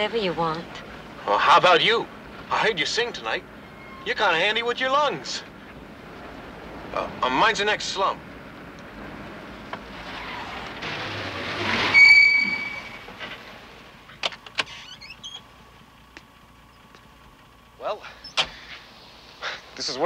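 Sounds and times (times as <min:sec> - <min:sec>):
car engine and road noise: 0:00.0 - 0:20.0
brake squeal: 0:02.5 - 0:05.8, 0:09.8 - 0:15.5, 0:18.0 - 0:19.7.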